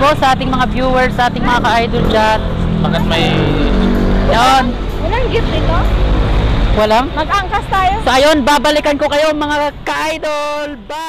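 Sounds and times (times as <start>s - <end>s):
low rumble of road traffic: 0.0s - 11.0s
people's voices: 0.0s - 11.0s.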